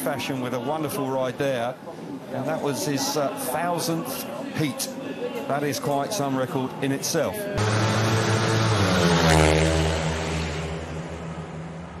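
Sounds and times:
low steady drone: 7.6 - 12.0.

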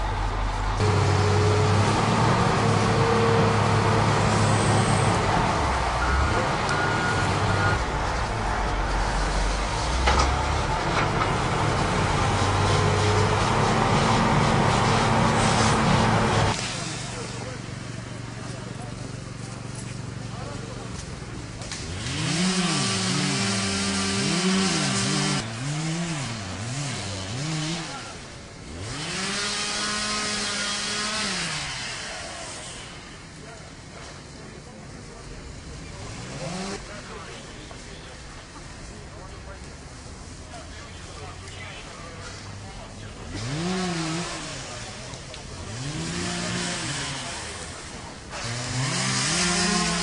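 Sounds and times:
vehicle engine running: 0.0 - 29.3.

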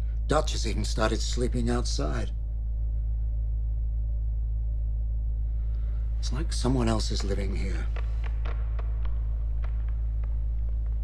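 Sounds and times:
deep low rumbling drone: 0.0 - 11.0.

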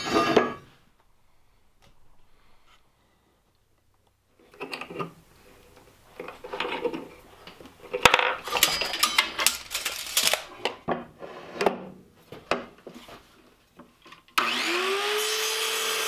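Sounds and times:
metal tubing clinking and scraping: 6.2 - 10.6.

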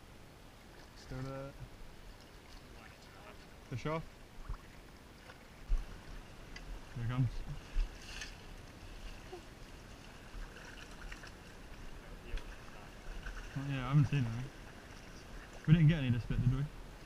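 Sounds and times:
stream water sloshing: 0.4 - 17.0.

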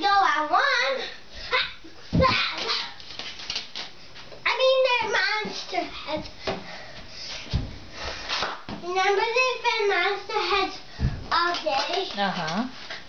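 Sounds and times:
child calling and babbling: 4.5 - 6.2
dull thumps: 11.0 - 11.4.

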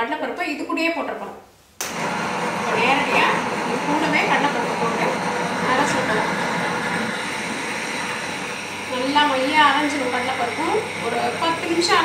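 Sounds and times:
wet grinder running: 1.8 - 12.0.

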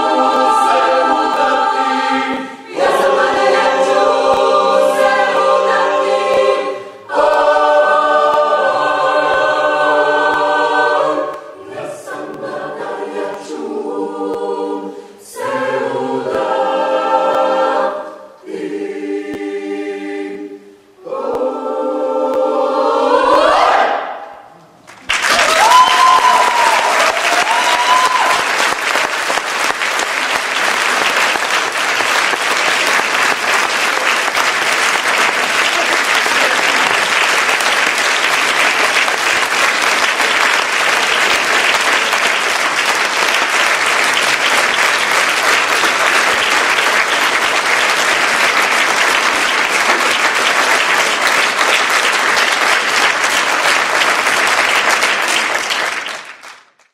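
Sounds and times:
audience applauding: 24.8 - 56.9.

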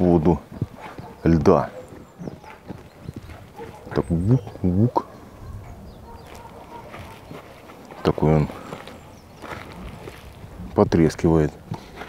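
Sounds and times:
ice crackling: 7.1 - 11.1.

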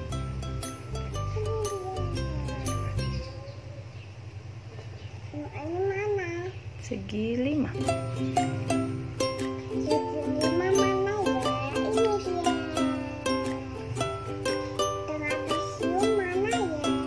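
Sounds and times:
plucked strings music: 0.0 - 3.3, 7.7 - 17.0
young child babbling: 1.2 - 4.0, 5.3 - 6.6, 9.8 - 13.9, 14.8 - 17.0.

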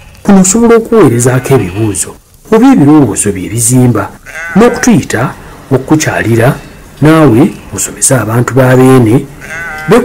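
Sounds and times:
sheep bleating: 1.0 - 2.0, 4.1 - 5.0, 9.2 - 10.0.

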